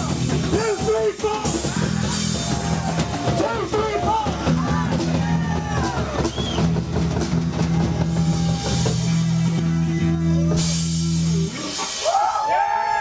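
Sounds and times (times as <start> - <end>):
live rock band playing: 0.0 - 13.0.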